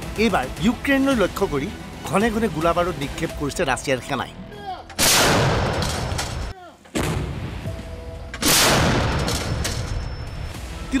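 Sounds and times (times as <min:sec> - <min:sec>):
artillery gun blast: 0:05.0 - 0:07.6, 0:08.4 - 0:09.9.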